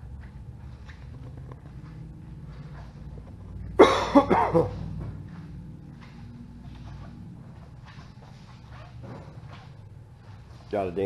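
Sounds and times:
low room hum: 0.0 - 11.0
man clearing throat: 3.7 - 5.0.

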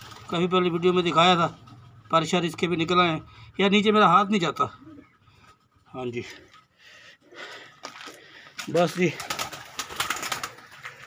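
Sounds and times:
pigeons fluttering and clattering: 0.0 - 2.6, 7.8 - 11.0.

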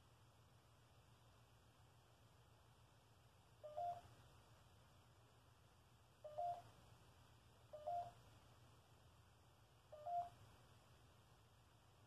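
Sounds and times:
faint room hum: 0.0 - 12.0
two-note electronic beeps: 7.8 - 8.2.

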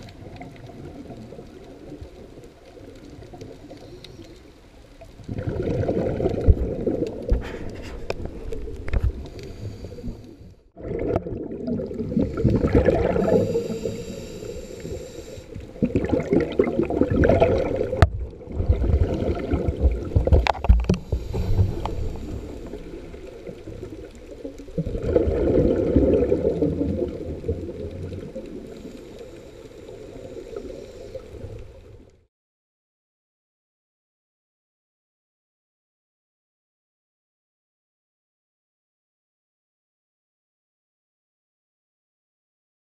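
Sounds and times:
muffled underwater water gurgle: 0.0 - 32.3.

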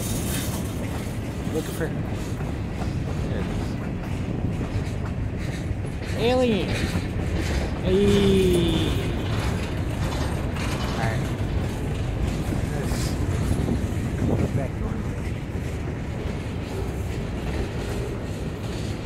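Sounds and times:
freight car rattles and clanks: 0.0 - 19.0
freight train wheels rumbling: 0.0 - 19.0.

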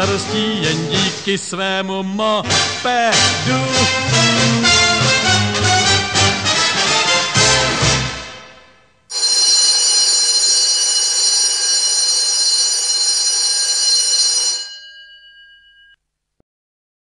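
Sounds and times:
electric bell ringing: 9.1 - 16.0.

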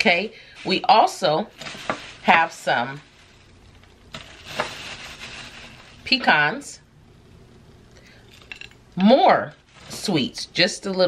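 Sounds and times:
rustling of a pack being opened: 0.6 - 6.1.

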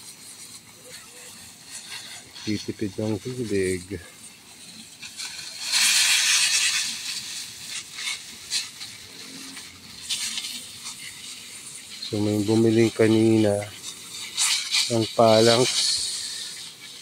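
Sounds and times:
hose water hissing and splashing: 0.0 - 17.0.

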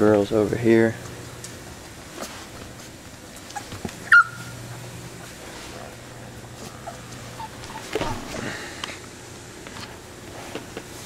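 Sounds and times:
low steady hum: 0.0 - 11.0
puppy yelping: 3.3 - 5.3, 6.6 - 8.4
puppy whimpering: 3.3 - 5.4, 6.5 - 8.4.

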